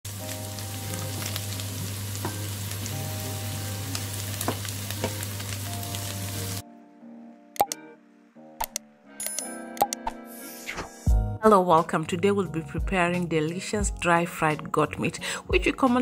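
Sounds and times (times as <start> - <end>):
meat sizzling in a frying pan: 0.1 - 6.6
quiet music: 0.1 - 16.0
sharp clicks: 7.6 - 7.8.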